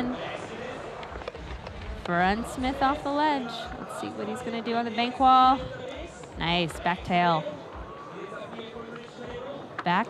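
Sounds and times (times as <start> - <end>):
faint skateboard clicks: 0.2 - 2.2, 7.8 - 9.9.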